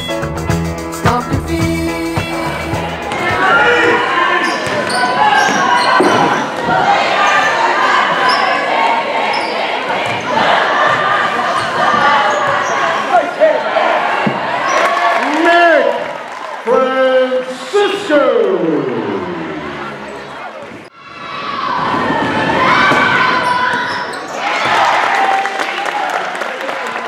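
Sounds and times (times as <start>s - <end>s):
echoing voices: 1.1s - 20.9s
shoe squeaks: 4.4s - 6.4s, 8.2s - 10.2s, 11.6s - 13.0s.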